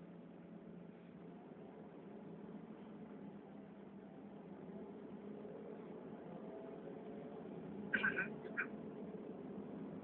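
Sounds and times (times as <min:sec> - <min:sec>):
vehicle interior rumble: 0:00.0 - 0:10.0.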